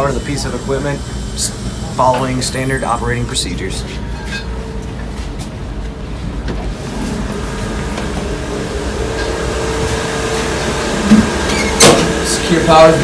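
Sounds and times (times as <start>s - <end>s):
machinery and ventilation drone: 0.0s - 13.0s.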